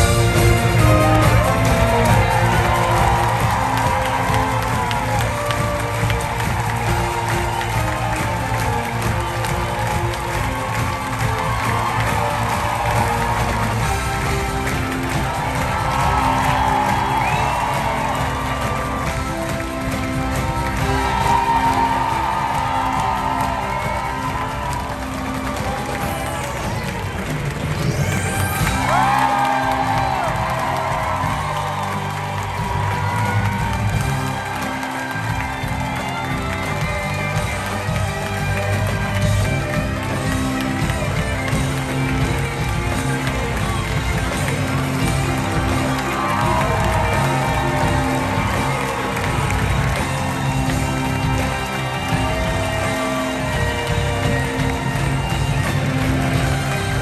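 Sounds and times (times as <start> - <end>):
audience clapping and cheering: 0.0 - 57.0
orchestra playing upbeat music: 0.0 - 57.0
whoops: 0.0 - 57.0.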